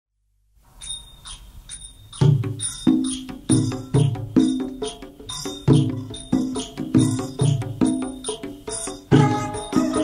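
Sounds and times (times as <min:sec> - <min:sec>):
metal percussion bell-like strokes: 0:00.7 - 0:10.0.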